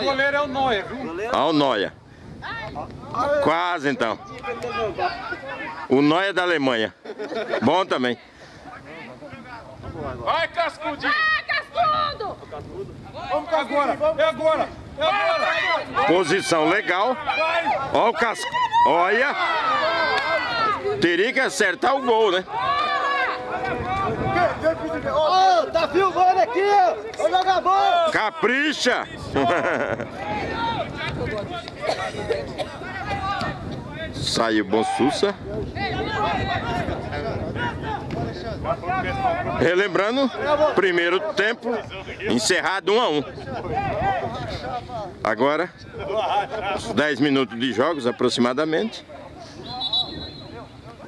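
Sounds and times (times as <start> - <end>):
wind rumbling on microphone: 0.0 - 6.8, 8.5 - 51.0
crowd calling out and talking: 0.0 - 51.0
distant shouts: 10.2 - 42.3, 48.8 - 51.0
referee's whistle long blast: 49.6 - 50.6.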